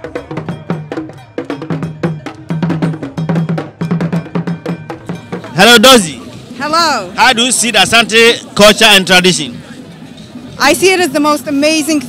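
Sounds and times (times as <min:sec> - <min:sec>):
struck bell: 0:00.0 - 0:06.6
drums playing fast rhythm: 0:00.0 - 0:12.0.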